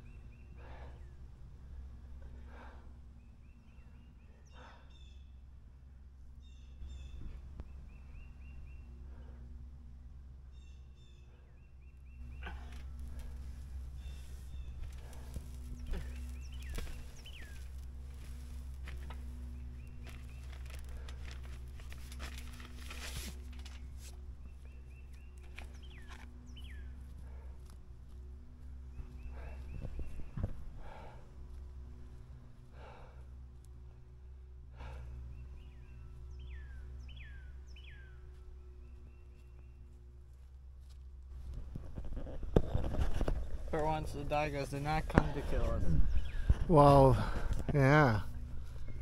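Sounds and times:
birds chirping: 0:00.0 - 0:40.7, 0:41.4 - 0:49.0
low background rumble: 0:00.0 - 0:49.0
rustling: 0:12.2 - 0:24.5.

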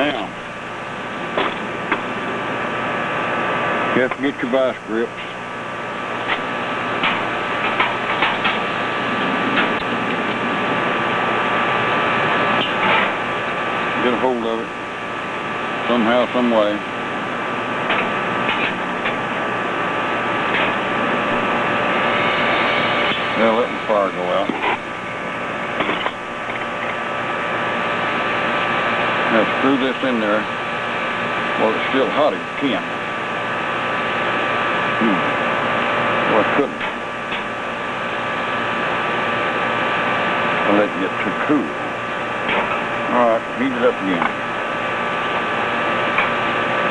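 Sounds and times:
gas burner hissing: 0:00.0 - 0:46.9.

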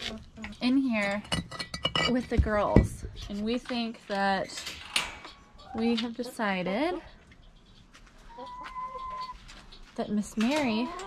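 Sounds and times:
hen calling: 0:05.2 - 0:11.0.

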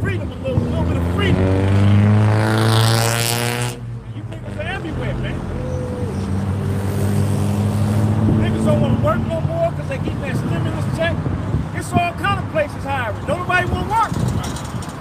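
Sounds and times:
vehicle engine droning: 0:00.0 - 0:15.0
loud rushing noise: 0:04.6 - 0:11.8.

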